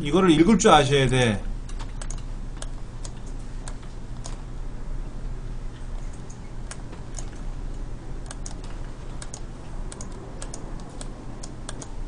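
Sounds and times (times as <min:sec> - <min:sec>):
typing on computer keyboard: 0:06.1 - 0:07.4, 0:08.2 - 0:12.0.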